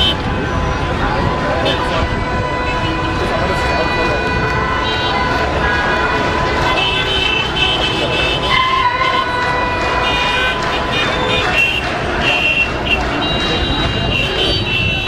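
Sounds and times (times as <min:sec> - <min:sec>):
crowd of voices: 0:00.0 - 0:15.0
traffic: 0:00.0 - 0:15.0.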